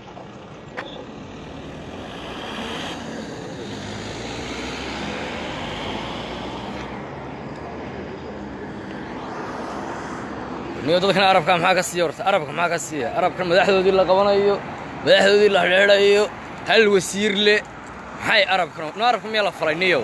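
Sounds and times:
traffic rushing: 0.0s - 20.0s.

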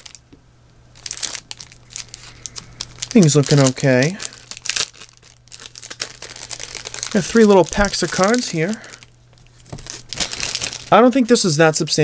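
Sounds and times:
card packaging crinkling: 0.0s - 0.2s, 1.0s - 11.5s
man speaking: 3.1s - 4.2s, 7.1s - 8.9s, 10.9s - 12.0s.

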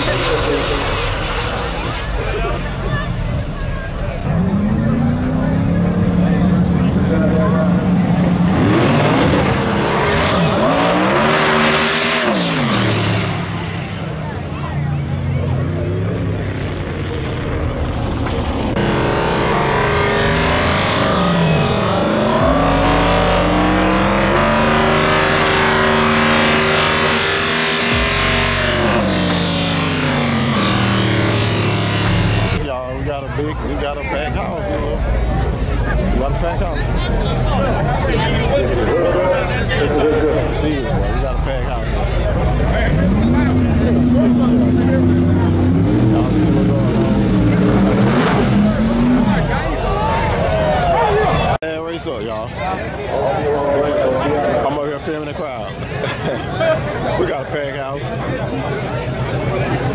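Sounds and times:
drag car engines revving: 0.0s - 59.9s.

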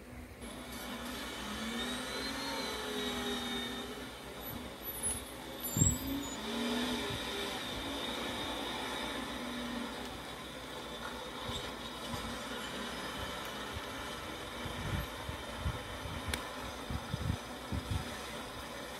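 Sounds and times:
truck engine running: 0.4s - 18.9s.

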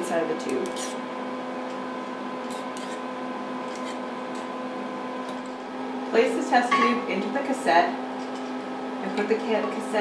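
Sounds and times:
electrical hum of equipment: 0.0s - 10.0s.

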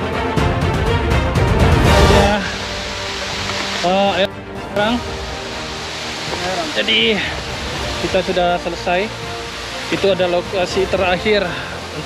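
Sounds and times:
background music: 0.0s - 12.0s
waterfall and stream rushing: 0.0s - 12.0s
voices: 6.2s - 9.2s.

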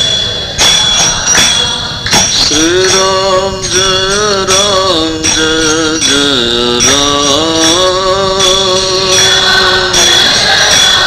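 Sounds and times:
person chanting sustained notes: 0.0s - 11.0s.

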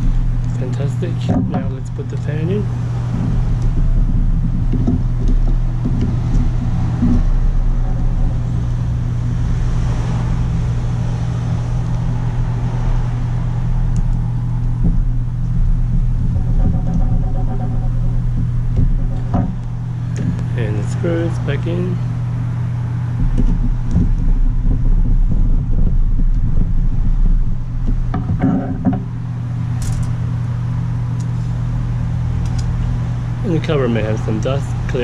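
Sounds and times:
low mechanical hum: 0.0s - 35.0s
low rumble: 0.0s - 35.0s
light clicks of small parts: 29.8s - 30.2s.

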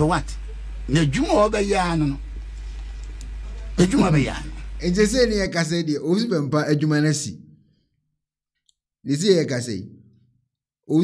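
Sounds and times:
person speaking: 0.0s - 7.3s.

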